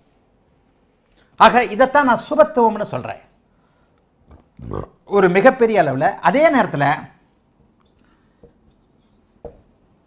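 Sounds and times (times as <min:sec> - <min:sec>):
marker pen squeaking on whiteboard: 0:07.6 - 0:09.8
pen tapping: 0:08.4 - 0:09.7.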